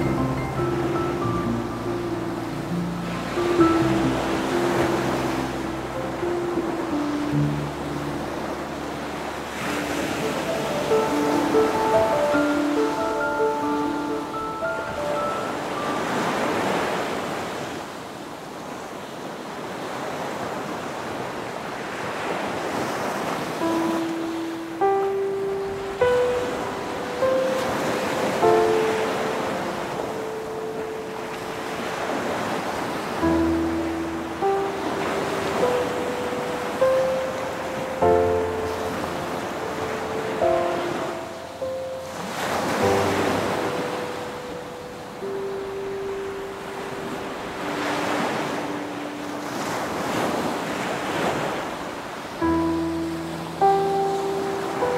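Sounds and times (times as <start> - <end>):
soft instrumental music: 0.0 - 17.1, 23.5 - 54.9
surf breaking on rocks: 8.2 - 17.9.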